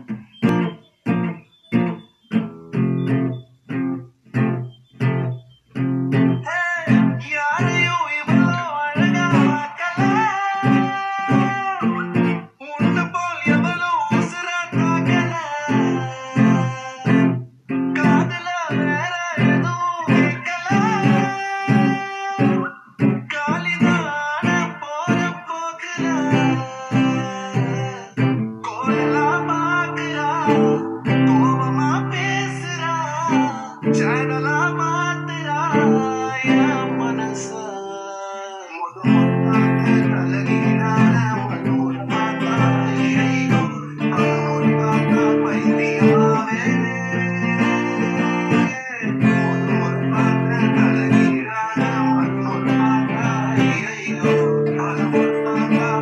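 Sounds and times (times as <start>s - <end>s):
acoustic guitar playing: 0.0s - 56.0s.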